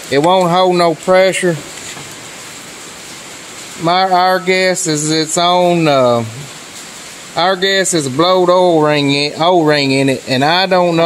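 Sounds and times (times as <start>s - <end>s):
man speaking: 0.0s - 1.7s, 3.8s - 6.6s, 7.4s - 11.0s
steady background hiss: 0.0s - 11.0s.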